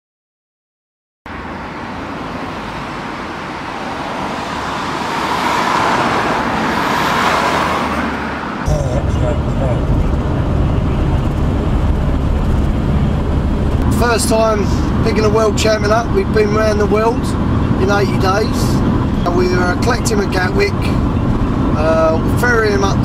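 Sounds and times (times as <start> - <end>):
car approaching on road: 1.3 - 23.0
car cabin road rumble: 1.4 - 23.0.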